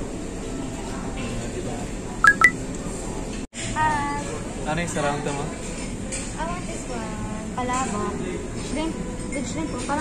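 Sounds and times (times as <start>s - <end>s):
short electronic beeps: 2.2s - 2.6s.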